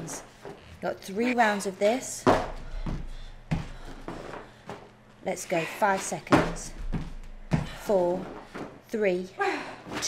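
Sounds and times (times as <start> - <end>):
feet landing on wooden floor: 2.2 - 4.9, 6.2 - 8.8.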